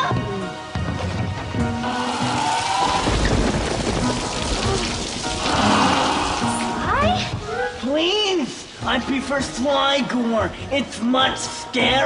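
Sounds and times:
music: 0.0s - 12.0s
steady rain: 1.8s - 10.1s
low rumble of thunder: 3.0s - 5.2s.

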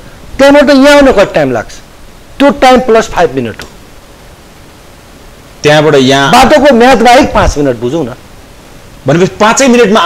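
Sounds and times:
faint steady hiss: 0.0s - 10.0s
man speaking: 0.4s - 3.7s, 5.6s - 8.2s, 9.0s - 10.0s.

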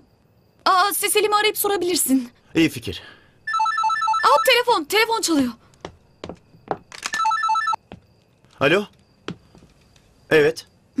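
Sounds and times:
mobile phone ringing: 3.5s - 4.5s, 7.0s - 7.8s.

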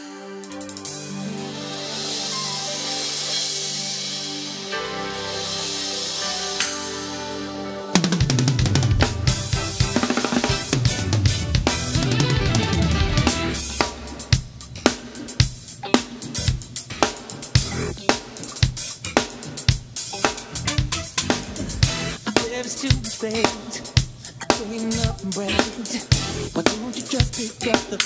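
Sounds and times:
held keyboard chords: 0.0s - 22.2s, 26.1s - 27.1s
acoustic drum kit: 0.0s - 28.0s
recorded band track: 0.0s - 28.0s.

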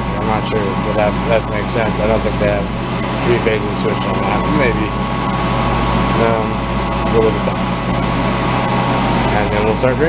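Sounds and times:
electrical hum: 0.0s - 10.0s
machinery drone: 0.0s - 10.0s.

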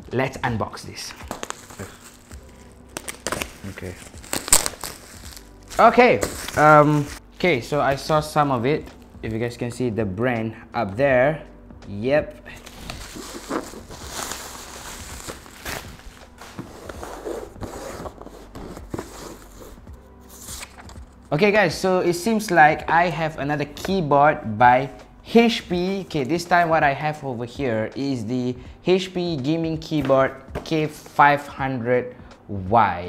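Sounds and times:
plastic wrap crinkling and tearing: 1.2s - 7.2s, 12.6s - 17.1s.

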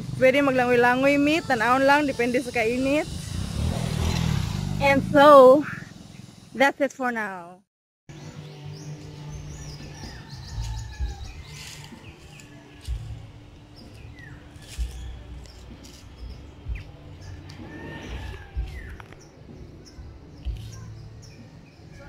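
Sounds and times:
birds chirping: 0.2s - 7.4s, 8.1s - 22.0s.

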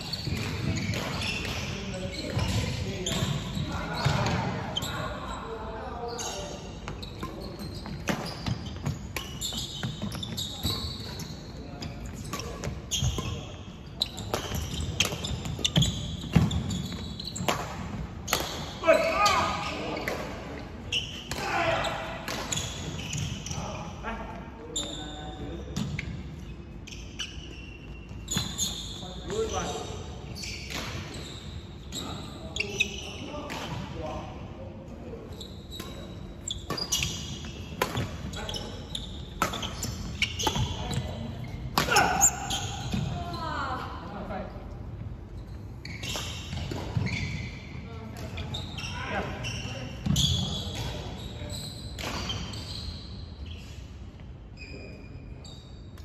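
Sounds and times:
shoes squeaking: 0.0s - 20.2s, 20.8s - 23.9s, 24.7s - 33.8s, 35.0s - 43.8s, 45.2s - 56.0s.

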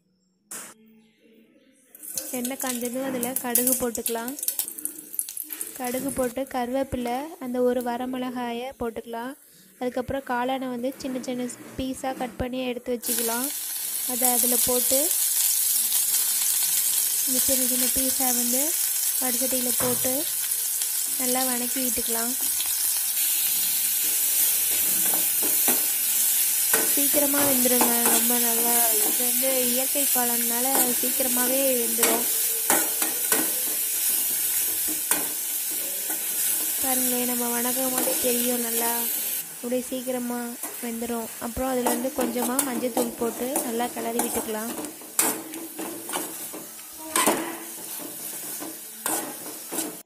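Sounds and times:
mushrooms sizzling in hot oil: 2.0s - 6.5s, 13.0s - 50.0s
spatula scraping metal pan: 41.8s - 50.0s.

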